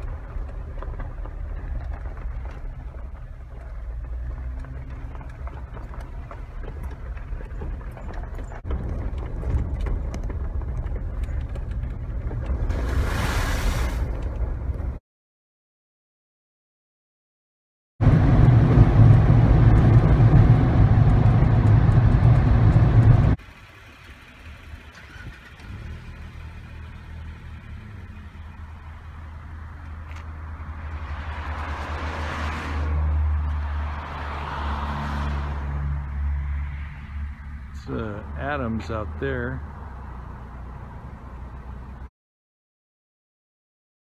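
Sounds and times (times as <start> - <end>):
road and engine noise in car: 0.0 - 15.0, 18.0 - 42.1
low steady engine hum: 18.0 - 31.9.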